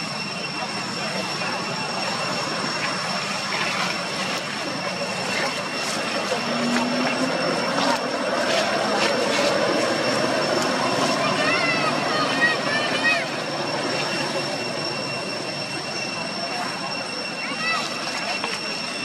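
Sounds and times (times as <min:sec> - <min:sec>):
high thin whine: 0:00.0 - 0:19.0.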